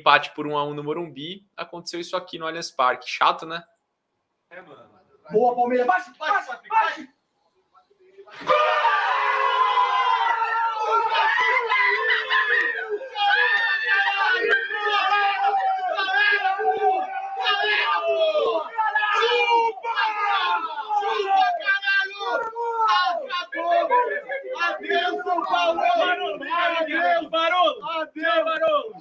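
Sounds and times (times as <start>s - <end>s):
men shouting and cheering: 8.3s - 29.0s.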